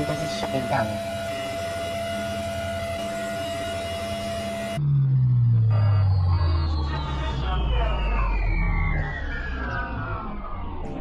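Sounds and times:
electronic tone gliding downward: 0.0 - 11.0
steady electronic hum: 0.0 - 11.0.

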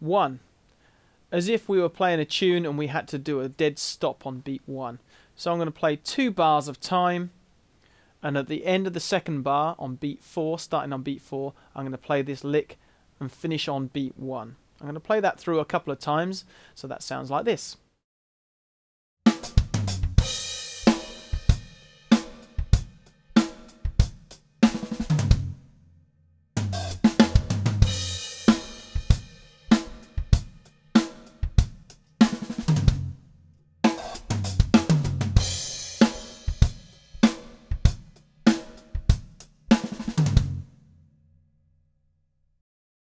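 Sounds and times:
drum kit playing: 19.3 - 25.7, 26.6 - 40.7.

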